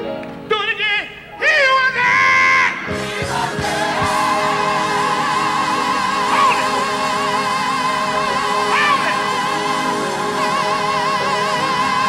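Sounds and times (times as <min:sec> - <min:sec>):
choir singing: 0:03.0 - 0:12.0.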